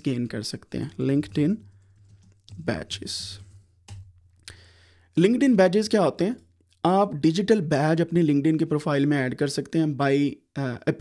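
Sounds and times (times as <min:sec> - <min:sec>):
short breath: 0:04.4 - 0:05.2.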